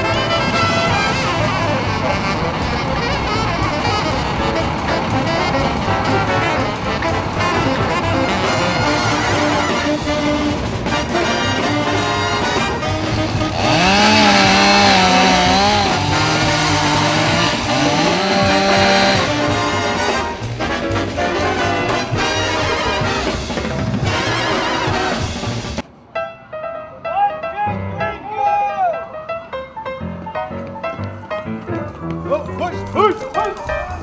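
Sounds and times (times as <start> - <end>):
low brass line: 0.0 - 25.8
brass background music: 0.0 - 27.0.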